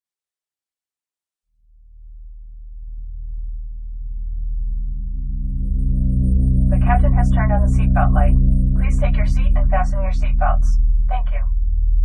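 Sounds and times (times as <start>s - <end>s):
deep electronic drone: 1.8s - 12.0s.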